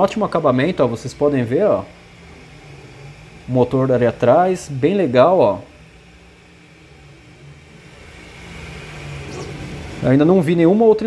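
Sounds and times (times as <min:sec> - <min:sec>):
printer motors and fans humming: 0:00.0 - 0:11.0.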